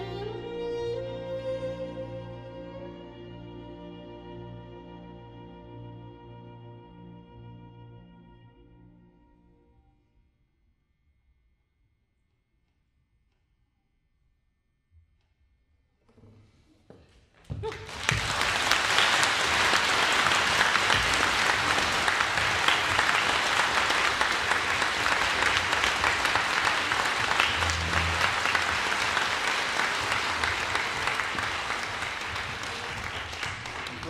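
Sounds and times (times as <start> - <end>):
audience applauding: 17.6 - 34.0.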